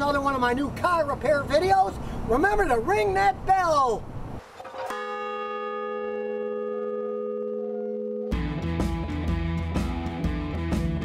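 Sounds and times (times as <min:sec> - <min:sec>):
large bell ringing: 0:04.8 - 0:08.6.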